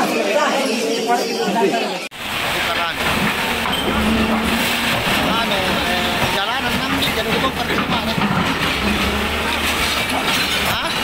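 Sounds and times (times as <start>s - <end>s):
people's voices: 0.0s - 11.0s
excavator diesel engine running: 2.2s - 11.0s.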